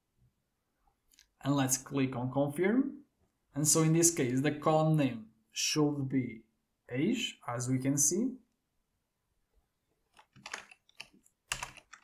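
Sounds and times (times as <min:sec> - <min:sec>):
computer keyboard keystrokes: 0:10.2 - 0:12.0.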